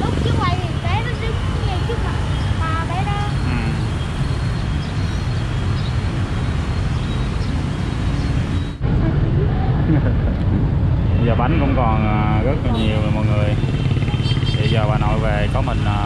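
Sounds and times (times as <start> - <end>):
faint voices: 0.0 - 4.0, 8.8 - 16.0
motorbikes passing close by: 0.0 - 16.0
street traffic: 0.0 - 16.0.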